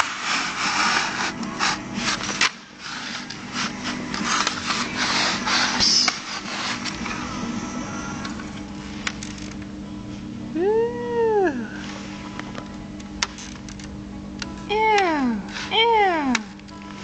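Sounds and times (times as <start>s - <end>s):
scraping on the floor: 0.0s - 7.2s
steady low hum: 0.0s - 17.0s.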